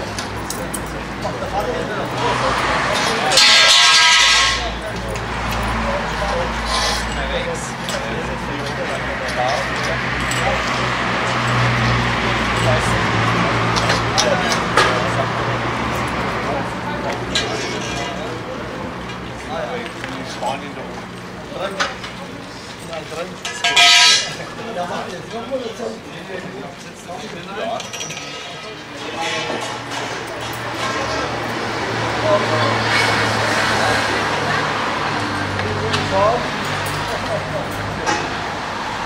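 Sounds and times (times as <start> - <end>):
people chattering outdoors: 0.0 - 39.0
metal poles clinking: 0.2 - 8.1, 23.3 - 24.5, 27.7 - 31.0.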